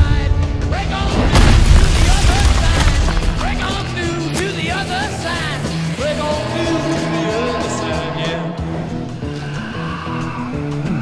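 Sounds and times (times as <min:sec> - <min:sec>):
cinematic trailer music: 0:00.0 - 0:11.0.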